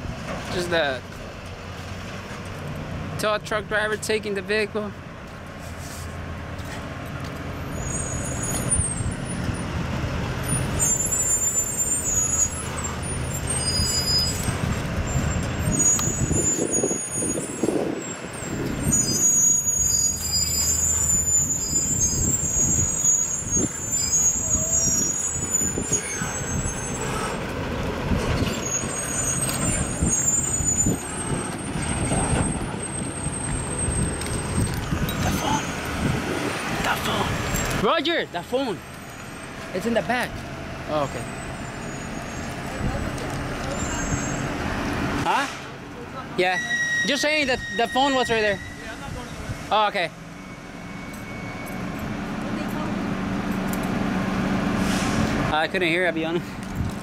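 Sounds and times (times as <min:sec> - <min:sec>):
traffic: 0:00.0 - 0:57.0
truck engine rumbling: 0:00.0 - 0:57.0
thin high squeals: 0:07.6 - 0:09.7, 0:10.4 - 0:27.4, 0:28.4 - 0:36.0, 0:38.9 - 0:39.9, 0:40.9 - 0:44.6, 0:46.4 - 0:52.3.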